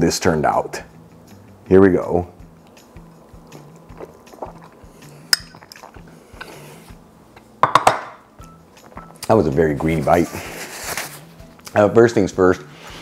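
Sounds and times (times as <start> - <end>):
soft background music: 0.0 - 13.0
bowl clattering on counter: 7.6 - 8.2.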